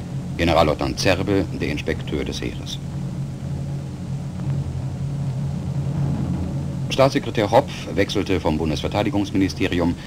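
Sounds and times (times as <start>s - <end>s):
low hum and rumble: 0.0s - 10.0s.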